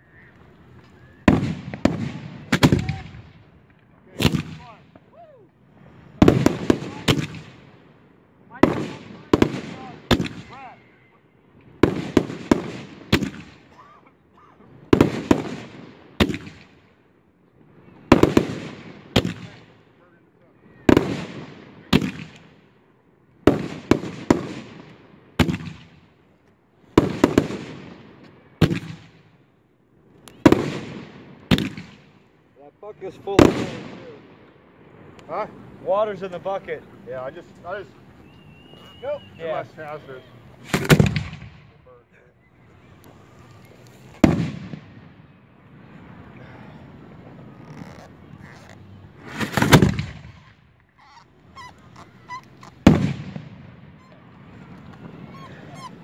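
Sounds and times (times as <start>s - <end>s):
fireworks booming: 0.7s - 5.1s, 5.7s - 10.6s, 11.7s - 13.8s, 14.8s - 16.8s, 18.0s - 19.8s, 20.7s - 22.7s, 23.4s - 26.1s, 26.9s - 29.5s, 30.2s - 39.3s, 40.4s - 42.0s, 43.0s - 56.0s.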